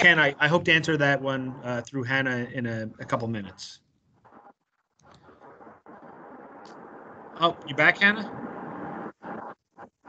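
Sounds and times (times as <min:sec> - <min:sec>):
faint microphone background noise: 0:00.0 - 0:10.0.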